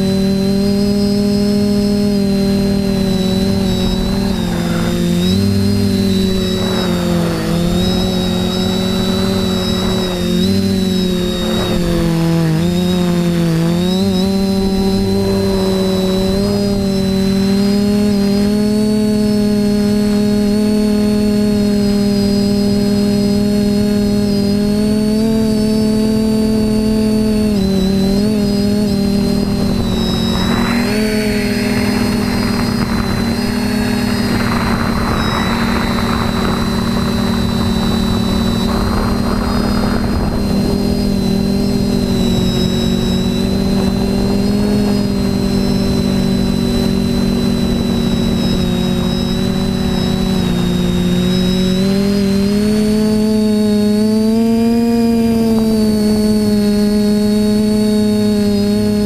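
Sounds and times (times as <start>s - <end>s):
drone propellers whining: 0.0s - 59.0s
rushing noise: 2.3s - 12.9s, 29.0s - 45.9s.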